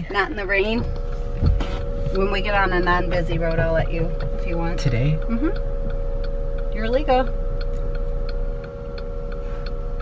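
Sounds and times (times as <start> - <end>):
engine and road hum: 0.0 - 10.0
turn signal ticking: 0.0 - 10.0.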